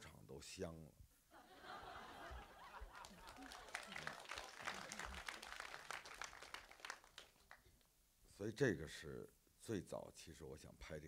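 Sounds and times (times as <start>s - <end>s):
audience applause: 2.4s - 7.6s.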